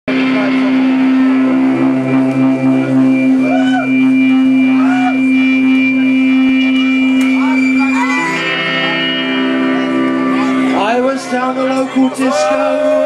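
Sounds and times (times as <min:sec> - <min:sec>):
electric guitar droning note: 0:00.1 - 0:12.0
high feedback whine: 0:00.1 - 0:13.0.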